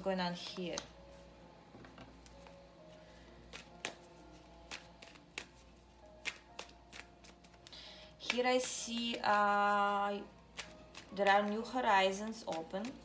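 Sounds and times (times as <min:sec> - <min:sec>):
soft slow background music: 0:00.0 - 0:13.0
cards being shuffled: 0:03.4 - 0:09.4, 0:10.5 - 0:13.0.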